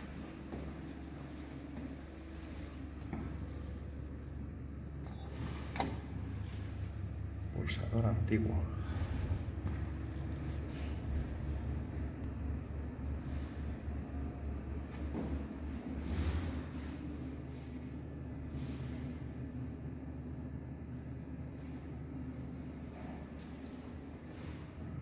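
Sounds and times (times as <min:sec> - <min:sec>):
elevator machinery rumble: 0:00.0 - 0:25.0.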